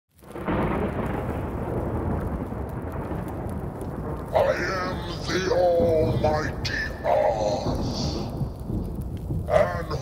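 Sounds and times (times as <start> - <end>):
deep thunder-like rumble: 0.3 - 10.0.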